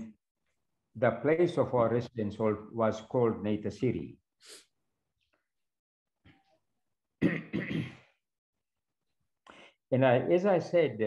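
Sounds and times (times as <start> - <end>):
man clearing his throat: 7.2 - 8.2.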